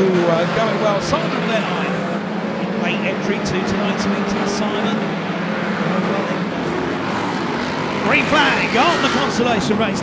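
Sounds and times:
racing engines droning: 0.0 - 10.0.

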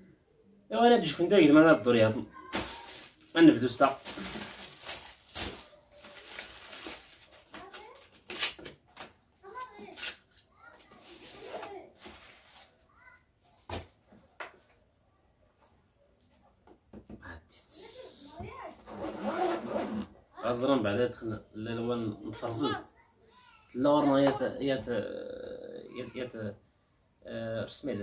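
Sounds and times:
plastic bag crinkling: 2.5 - 8.6.

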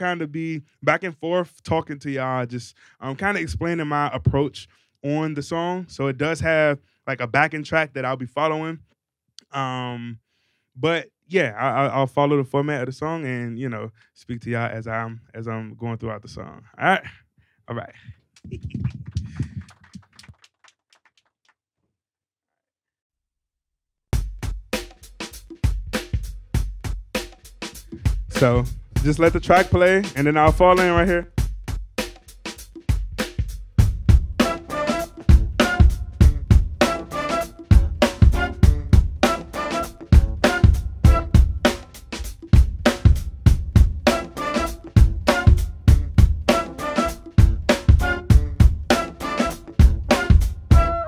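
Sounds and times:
microphone handling rumble: 18.0 - 20.1
drum kit groove: 24.2 - 51.0
smooth jazz backing track: 27.7 - 51.0.

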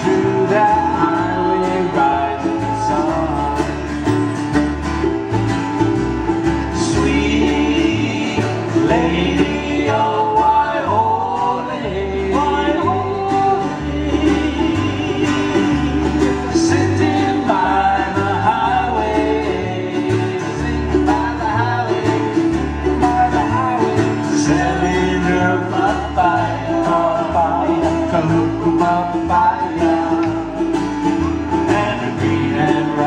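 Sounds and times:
strummed guitar and ukulele: 0.0 - 33.0
walking bass line: 0.0 - 33.0.

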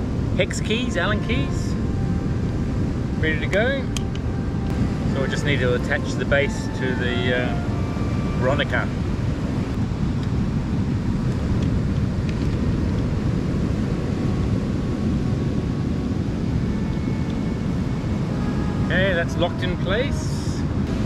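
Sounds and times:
low outdoor rumble: 0.0 - 21.0.

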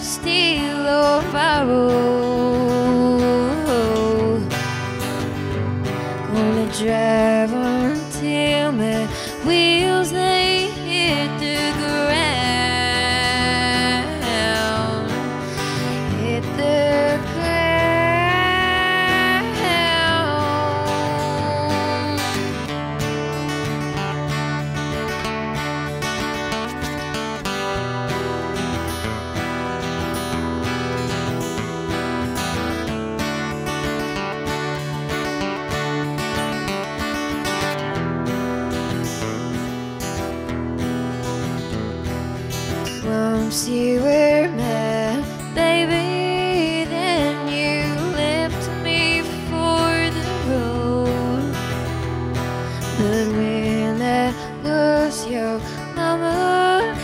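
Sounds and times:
acoustic guitar: 0.0 - 57.0
woman singing long sliding notes: 6.3 - 22.5.

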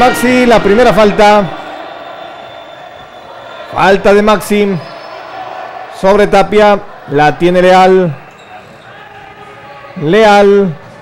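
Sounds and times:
sports hall background noise: 0.0 - 11.0.

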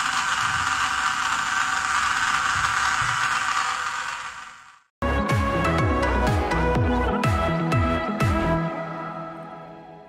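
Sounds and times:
small gear motor whirring and rattling: 0.0 - 4.9.

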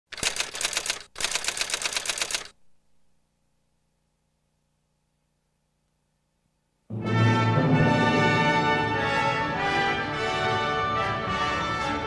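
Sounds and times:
rapid sharp clicks: 0.1 - 2.6
faint low hum: 2.3 - 7.0.

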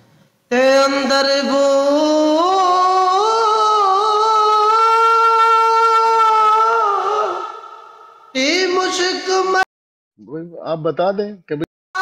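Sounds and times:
person singing long high note: 0.5 - 9.7.

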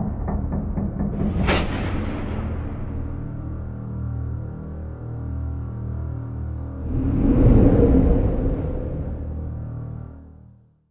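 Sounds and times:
dark droning soundtrack music: 0.0 - 10.7
rumbling whoosh: 6.8 - 10.2.

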